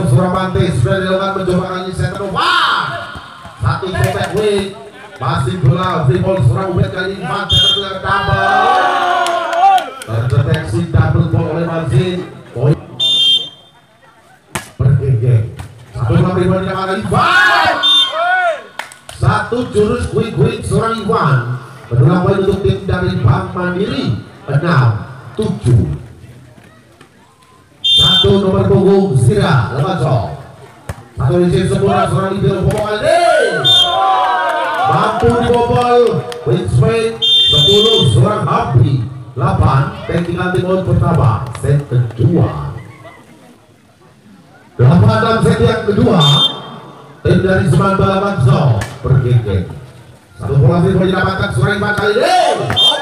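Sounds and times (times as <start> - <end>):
voices: 0.0 - 53.0
referee whistle blast: 7.5 - 8.0, 13.0 - 13.7, 17.7 - 18.4, 27.8 - 28.4, 33.6 - 34.1, 37.2 - 38.3, 46.1 - 46.8, 52.7 - 53.0
sharp smack: 14.5 - 14.8.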